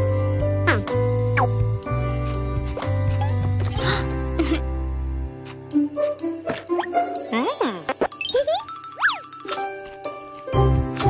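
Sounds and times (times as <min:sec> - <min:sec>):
cartoon background music: 0:00.0 - 0:11.0.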